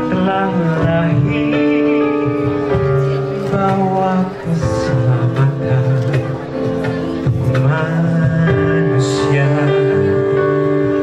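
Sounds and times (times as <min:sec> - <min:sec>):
instrumental accompaniment: 0:00.0 - 0:11.0
man singing into a microphone: 0:00.0 - 0:11.0.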